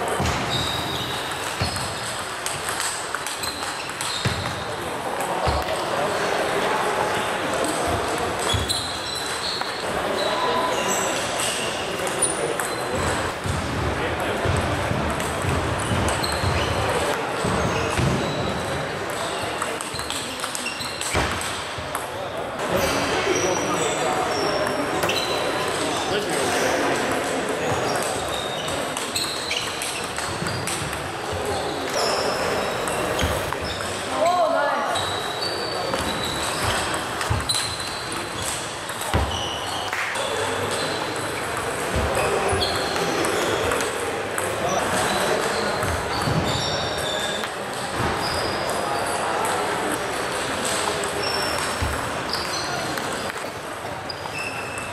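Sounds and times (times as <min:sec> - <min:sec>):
voices in a hall: 0:00.0 - 0:54.9
table tennis ball clicks: 0:19.1 - 0:22.1.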